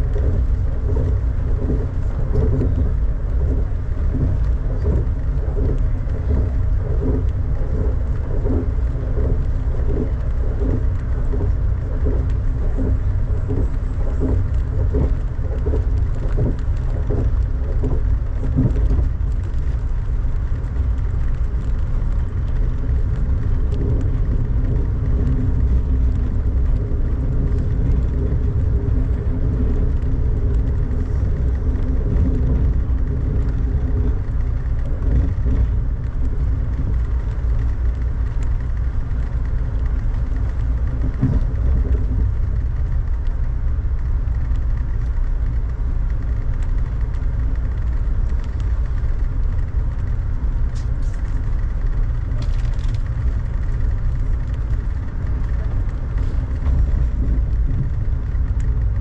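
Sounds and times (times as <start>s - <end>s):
faint steady hum: 0.0s - 59.0s
train rumbling from inside: 0.0s - 59.0s.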